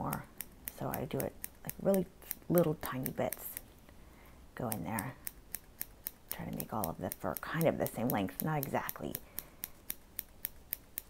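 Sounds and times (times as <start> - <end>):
small scissors snipping: 0.0 - 3.7, 4.7 - 11.0.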